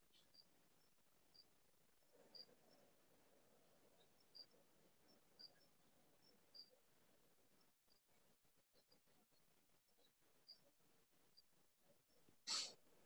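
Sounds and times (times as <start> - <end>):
faint high chirps: 0.0 - 12.8.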